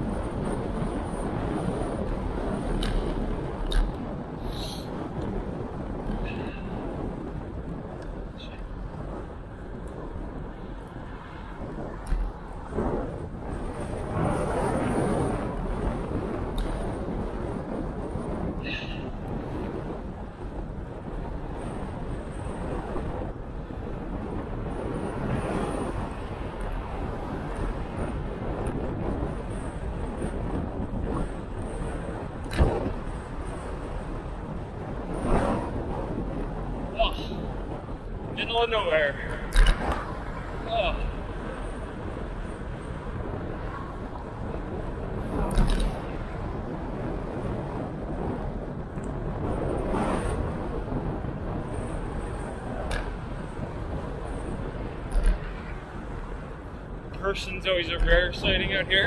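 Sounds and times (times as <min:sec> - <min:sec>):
wind buffeting microphone: 0:00.0 - 0:59.0
person exclaiming: 0:37.0 - 0:37.3, 0:40.7 - 0:41.0.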